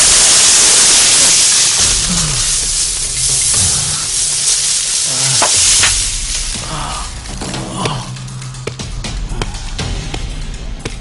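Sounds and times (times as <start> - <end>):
hiss of gravel settling: 0.0 - 7.5
sharp cracks: 0.0 - 8.0.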